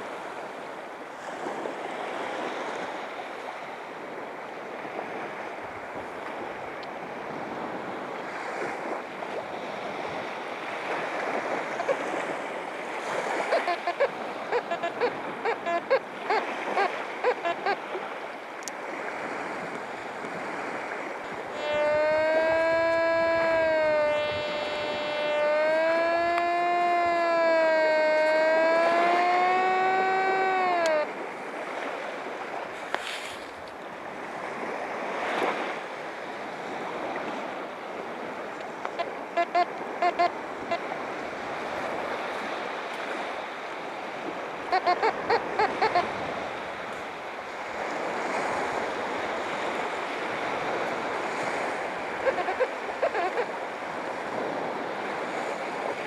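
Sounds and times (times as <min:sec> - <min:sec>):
waves: 0:00.0 - 0:56.0
wind: 0:00.0 - 0:56.0
metal detector signal tone: 0:13.4 - 0:17.8, 0:21.5 - 0:31.1, 0:38.9 - 0:40.8, 0:44.7 - 0:46.2, 0:52.2 - 0:53.5.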